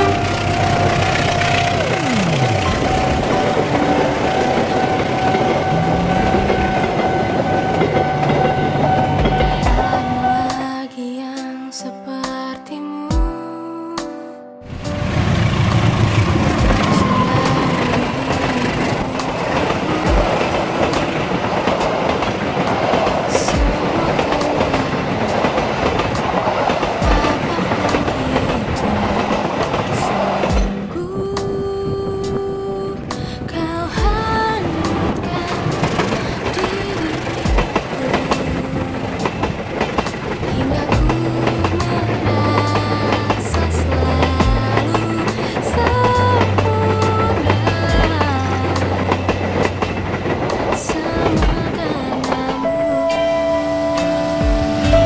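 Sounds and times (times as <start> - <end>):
train passing at speed: 0.0 - 10.9, 14.7 - 55.0
pop music: 0.0 - 55.0.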